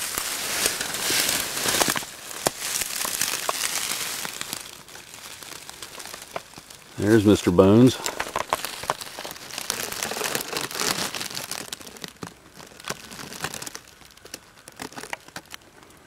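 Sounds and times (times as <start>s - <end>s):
dry leaves rustling and crackling: 0.0s - 16.0s.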